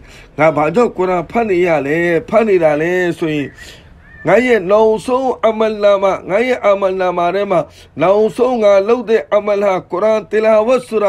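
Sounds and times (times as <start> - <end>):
man speaking sing-song: 4.2 - 11.0.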